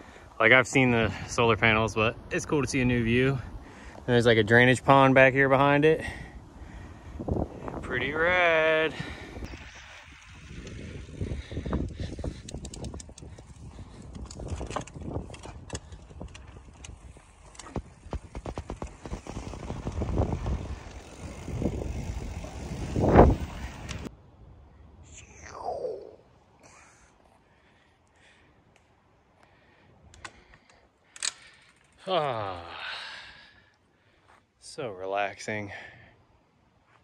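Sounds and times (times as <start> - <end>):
bike tyres rumbling on trail: 2.8 - 24.1
bike rattling and knocking: 9.4 - 24.1.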